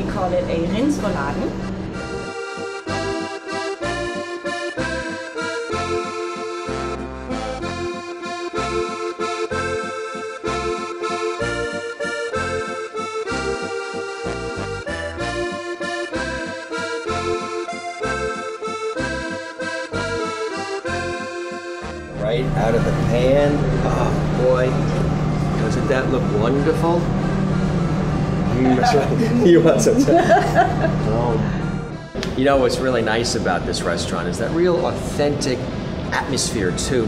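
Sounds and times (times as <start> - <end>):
accordion: 0.0 - 37.0.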